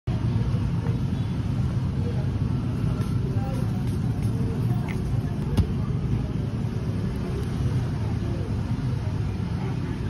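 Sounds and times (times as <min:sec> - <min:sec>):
faint voices: 0:00.1 - 0:10.0.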